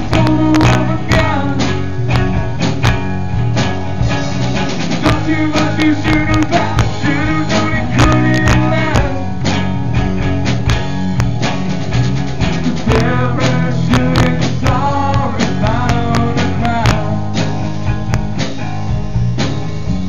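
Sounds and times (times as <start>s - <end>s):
person singing: 0.0s - 1.8s, 5.0s - 9.4s, 12.6s - 17.5s
bass: 0.0s - 20.0s
guitars: 0.0s - 20.0s
steady drum beat: 0.0s - 20.0s.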